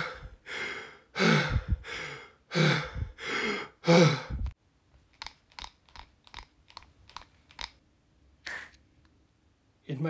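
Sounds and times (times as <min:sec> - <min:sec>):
heavy gasping breaths: 0:00.0 - 0:04.5.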